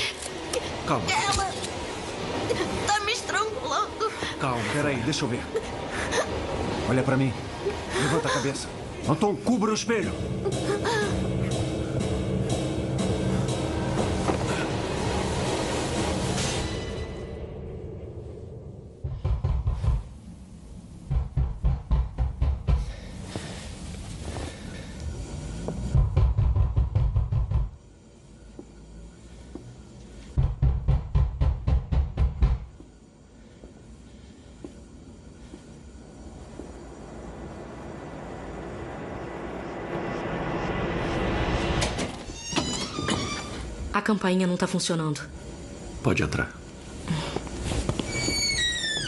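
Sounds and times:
ominous film score: 0.0s - 49.0s
rapid knocking on a door: 21.1s - 23.0s, 26.0s - 27.8s, 30.4s - 32.8s.

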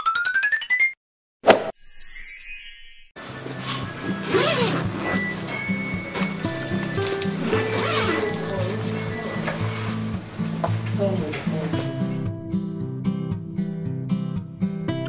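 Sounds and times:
zipper rasping: 3.4s - 10.2s.

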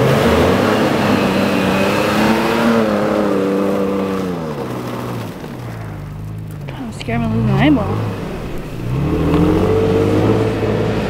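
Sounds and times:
truck engine revving: 0.0s - 11.0s
tyres churning through slushy snow: 0.0s - 11.0s.

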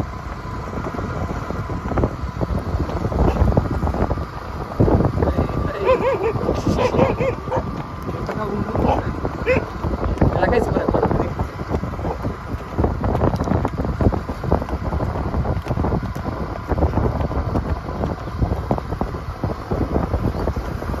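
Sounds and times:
vehicle running: 0.0s - 21.0s
wind buffeting microphone: 0.0s - 21.0s.

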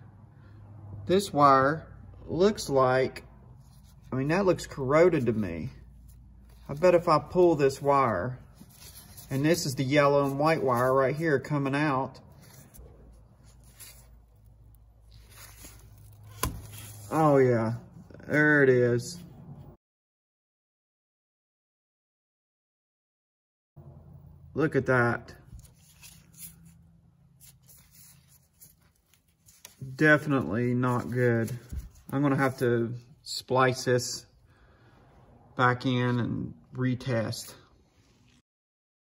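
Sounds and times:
gloved hands rustling: 3.5s - 17.8s, 25.4s - 33.3s.

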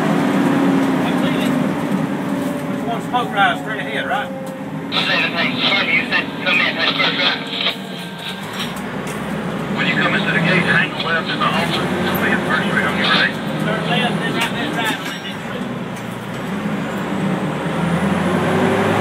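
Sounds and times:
fire engine running: 0.0s - 19.0s
road noise: 0.0s - 19.0s
muffled voices: 2.4s - 15.8s.

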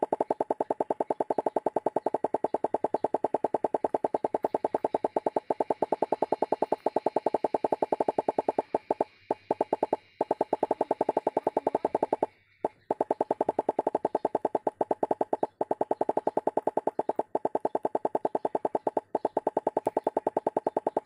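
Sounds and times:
cartoon popcorn popping: 0.0s - 21.0s.

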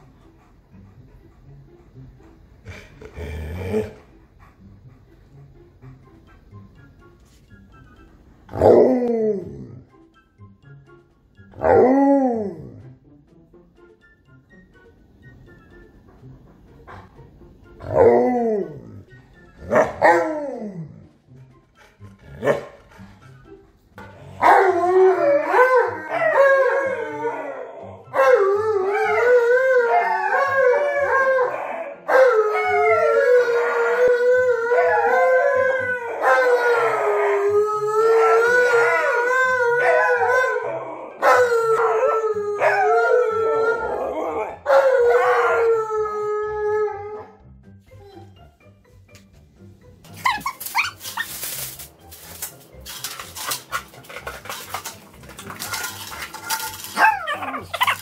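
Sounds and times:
dogs howling: 8.6s - 9.8s, 11.6s - 12.8s, 17.8s - 19.0s, 19.7s - 21.0s, 24.3s - 47.4s, 53.0s - 58.0s.

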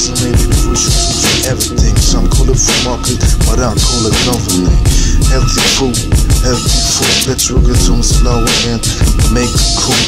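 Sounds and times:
hip-hop beat with heavy bass: 0.0s - 10.0s
rapped vocal phrases: 0.0s - 10.0s.

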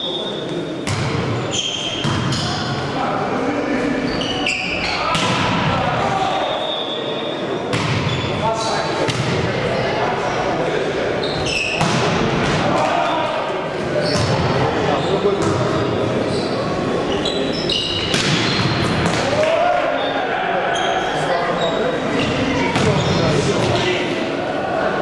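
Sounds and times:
volleyball being hit: 11.8s - 12.9s
players shouting: 12.5s - 13.6s, 19.0s - 21.6s.

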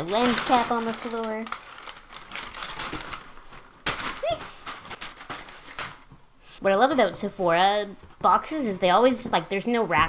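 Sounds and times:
paper packing rustling: 0.0s - 6.2s.

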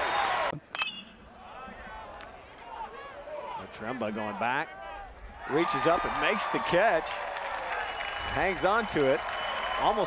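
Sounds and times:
crowd noise: 0.0s - 10.0s
metal bat hitting ball: 0.7s - 1.2s.

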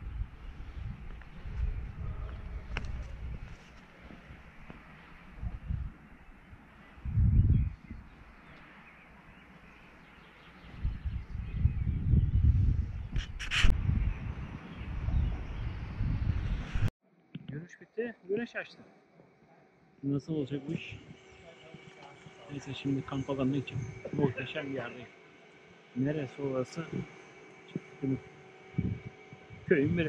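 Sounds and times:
wind buffeting microphone: 0.0s - 8.4s, 10.6s - 16.9s, 23.6s - 24.4s, 28.0s - 30.0s
brief crackles: 13.1s - 13.7s.

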